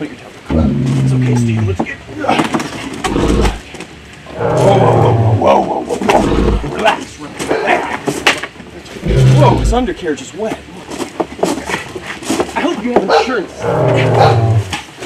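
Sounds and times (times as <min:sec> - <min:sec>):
low roaring growls: 0:00.5 - 0:01.8, 0:03.0 - 0:03.7, 0:04.3 - 0:06.9, 0:08.9 - 0:10.1, 0:13.5 - 0:14.8
vocal noises: 0:03.0 - 0:03.7, 0:06.0 - 0:06.8, 0:09.0 - 0:10.0
deep thuds: 0:09.0 - 0:10.0.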